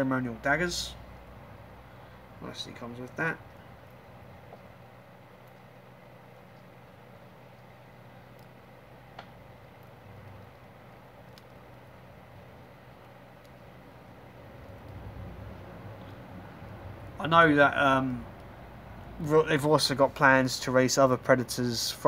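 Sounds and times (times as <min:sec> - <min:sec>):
faint steady hum and hiss: 0:00.0 - 0:22.0.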